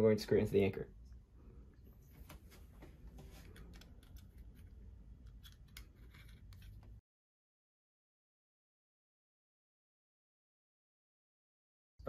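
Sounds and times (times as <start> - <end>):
low room hum: 0.1 - 7.0
plastic plate clicking and rubbing: 3.4 - 7.0.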